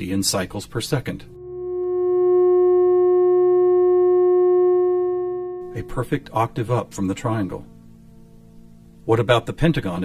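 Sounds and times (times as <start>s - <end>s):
steady electronic sine tone: 1.0s - 9.2s.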